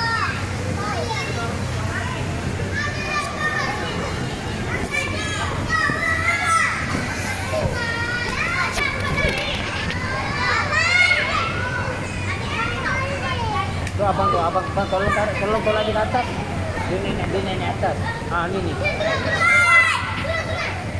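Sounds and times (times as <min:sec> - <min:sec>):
children shouting and squealing: 0:00.0 - 0:17.0, 0:18.0 - 0:20.9.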